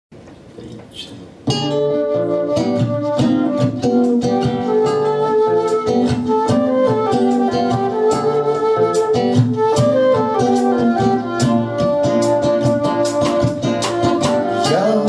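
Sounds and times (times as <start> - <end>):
strummed acoustic guitar: 1.4 - 15.0
flute melody: 1.5 - 15.0
snare drum beat: 11.4 - 14.9.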